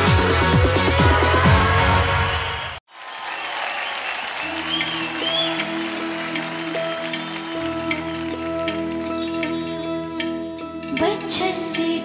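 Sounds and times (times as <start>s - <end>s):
audience applause: 2.3s - 8.7s
soft instrumental song intro: 4.4s - 11.9s.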